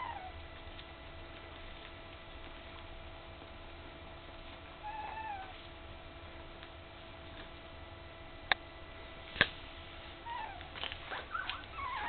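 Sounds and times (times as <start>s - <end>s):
puppy whining: 0.0s - 0.5s, 4.8s - 5.7s, 10.2s - 12.0s
faint steady hum: 0.0s - 12.0s.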